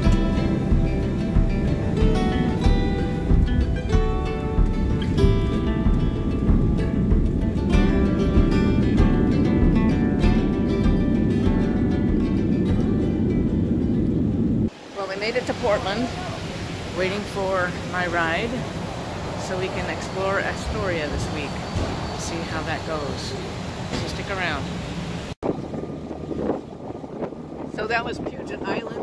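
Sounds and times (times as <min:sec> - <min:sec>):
acoustic guitar music: 0:00.0 - 0:16.4
airplane cabin rumble: 0:00.0 - 0:29.0
wind buffeting microphone: 0:00.0 - 0:29.0.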